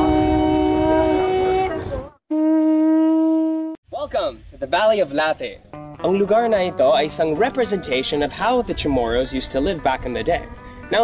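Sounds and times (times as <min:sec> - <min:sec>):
conch shell trumpet blowing: 0:00.0 - 0:03.8.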